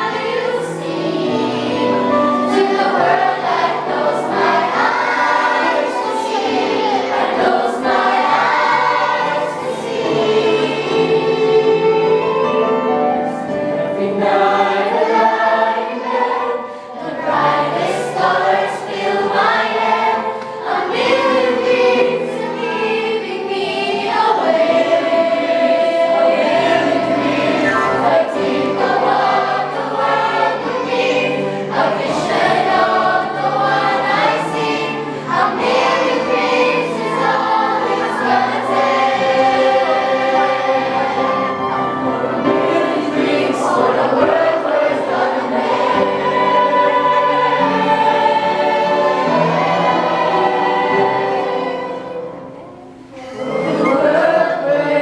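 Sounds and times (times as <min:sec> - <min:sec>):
youth choir singing: 0:00.0 - 0:55.0.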